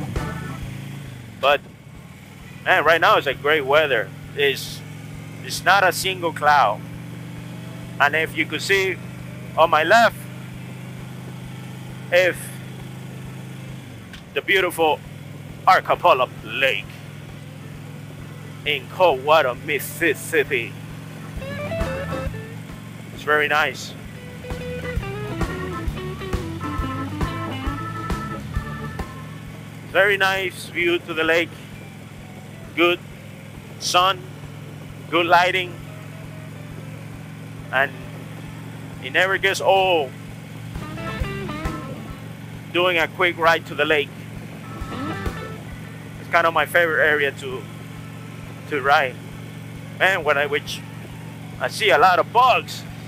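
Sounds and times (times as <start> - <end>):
motorcycle engine droning: 0.0 - 53.0.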